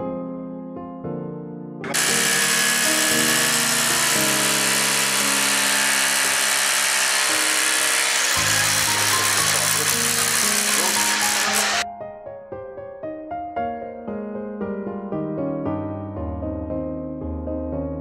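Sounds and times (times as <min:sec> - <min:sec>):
soft piano music: 0:00.0 - 0:05.6, 0:08.4 - 0:18.0
power drill boring into brick: 0:01.8 - 0:11.8.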